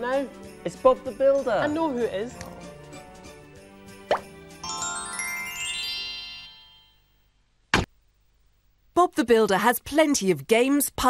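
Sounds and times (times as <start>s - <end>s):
bright ringing chime chord: 4.6s - 7.1s.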